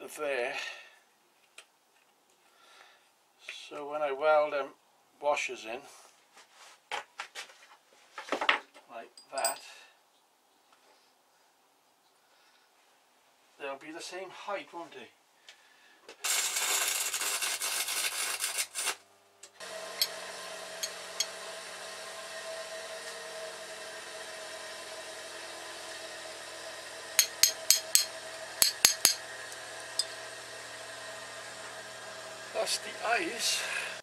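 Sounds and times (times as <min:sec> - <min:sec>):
band saw cutting wood: 0:19.6 - 0:34.0.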